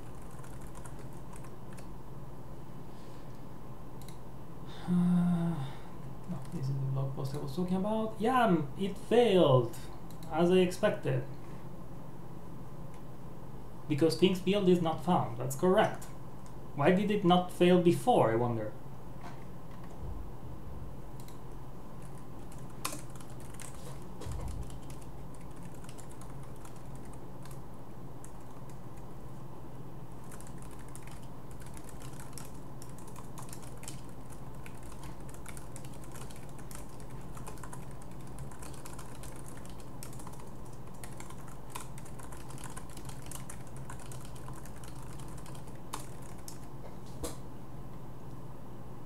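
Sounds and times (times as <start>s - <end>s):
typing on keyboard: 0.0s - 1.9s, 22.0s - 27.6s, 30.2s - 46.7s.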